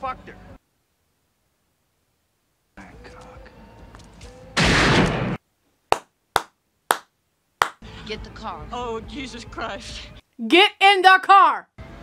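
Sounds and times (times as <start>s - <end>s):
gunshot: 4.6s - 5.4s.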